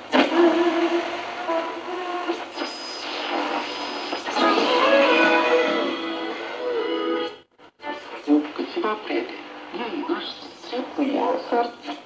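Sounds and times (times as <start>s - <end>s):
thin music from radio loudspeaker: 0.0s - 12.0s.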